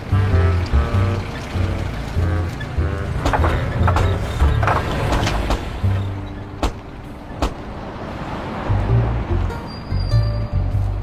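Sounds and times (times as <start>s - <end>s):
engine and road rumble: 0.0s - 11.0s
van jolting knocks: 2.5s - 7.6s.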